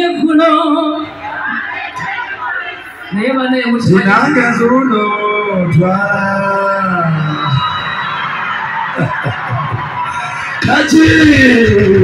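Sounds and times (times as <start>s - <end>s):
crowd cheering and screaming: 0.9s - 12.0s.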